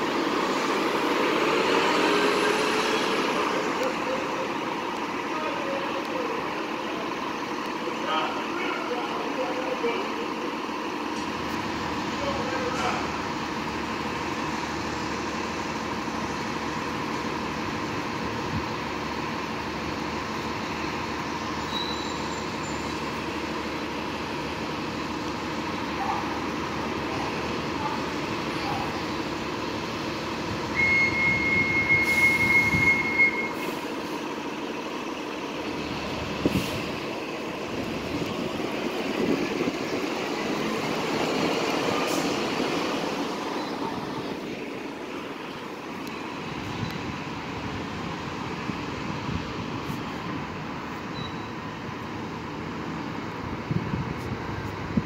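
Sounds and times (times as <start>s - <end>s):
bus diesel engines running: 0.0s - 55.0s
loud high squeal: 21.6s - 23.0s, 30.7s - 33.8s.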